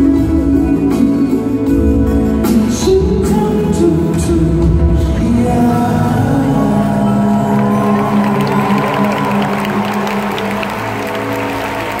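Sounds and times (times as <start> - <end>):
live band playing pop ballad: 0.0 - 12.0
audience clapping and cheering: 7.4 - 12.0.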